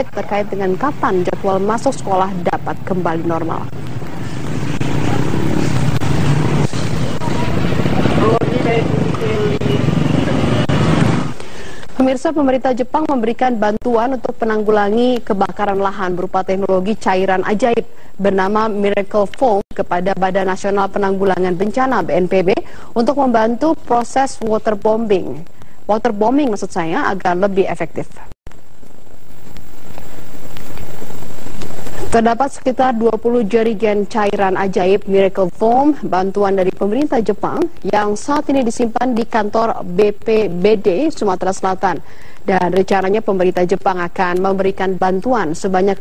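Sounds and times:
people's voices: 0.0 - 10.8
motorcycles rumbling: 0.0 - 11.9
helicopter running: 2.5 - 11.4.

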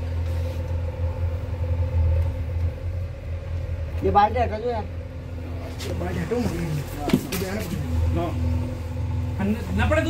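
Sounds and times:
deep rumble: 0.0 - 10.0
faint hum: 0.0 - 10.0.

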